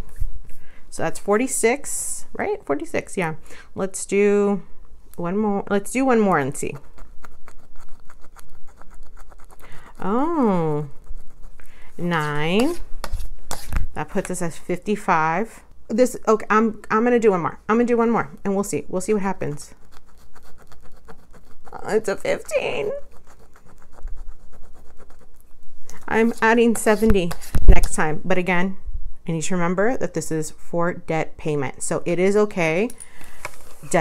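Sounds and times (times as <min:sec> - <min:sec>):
scratching off card coating: 0:06.8 - 0:09.8, 0:19.6 - 0:25.4.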